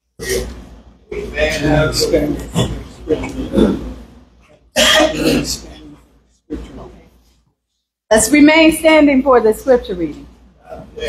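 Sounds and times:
person coughing: 0:04.8 - 0:05.9.

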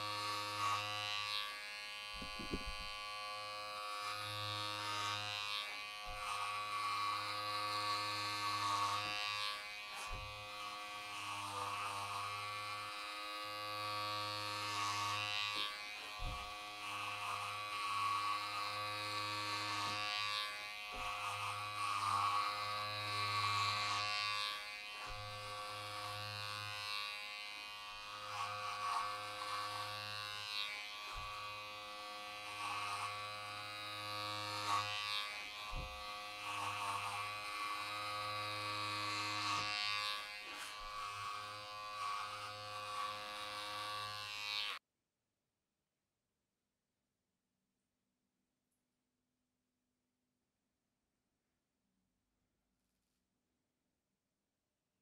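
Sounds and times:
blade cutting rasp: 0:00.0 - 0:44.8
electric clippers buzzing: 0:00.0 - 0:44.8.

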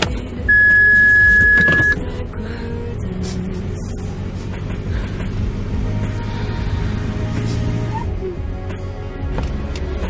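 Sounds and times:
car cabin drone: 0:00.0 - 0:10.0
high-pitched dashboard warning beep: 0:00.5 - 0:02.0.

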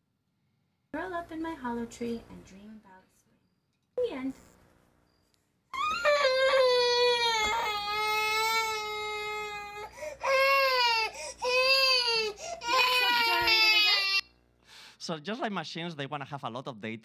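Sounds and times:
infant crying: 0:05.7 - 0:14.2.

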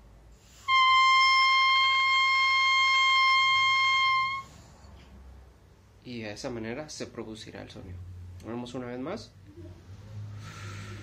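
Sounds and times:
oboe reed high steady tone: 0:00.6 - 0:04.7.

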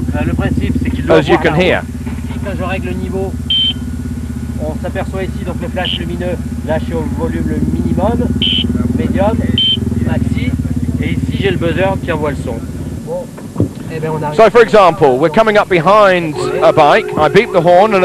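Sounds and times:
car engine running: 0:00.0 - 0:18.0
short high beeps: 0:03.5 - 0:03.9, 0:16.3 - 0:18.0.

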